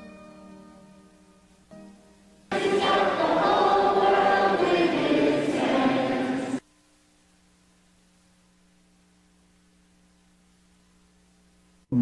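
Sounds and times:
choir singing: 2.5 - 6.6.

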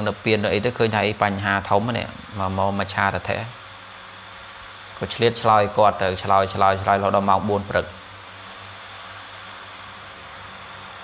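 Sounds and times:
background hiss: 0.0 - 11.0
low even hum: 0.0 - 11.0.

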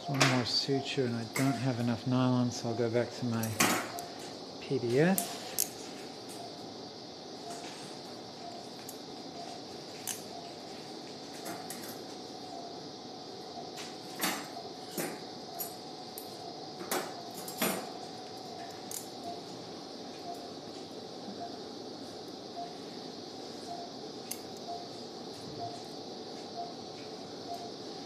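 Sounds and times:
patient monitor beeping: 0.0 - 6.7, 7.3 - 28.0.

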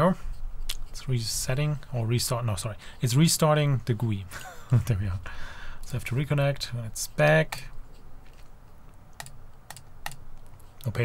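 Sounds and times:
computer mouse clicks: 9.1 - 10.6.

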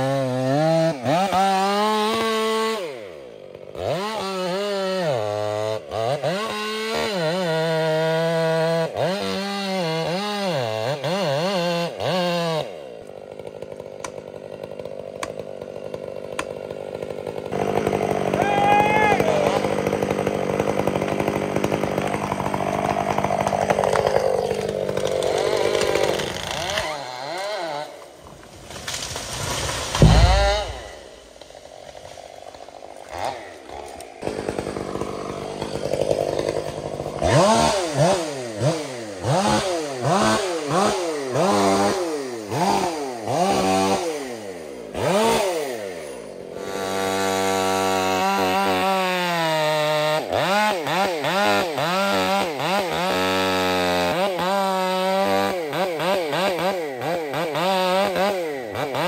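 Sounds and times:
chainsaw cutting under load: 0.0 - 59.0
chainsaw revving in blips: 0.0 - 59.0
tree hitting the ground: 28.2 - 32.2.

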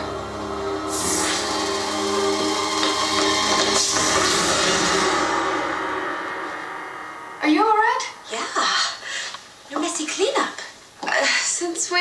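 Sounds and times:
dramatic score: 0.0 - 8.9.

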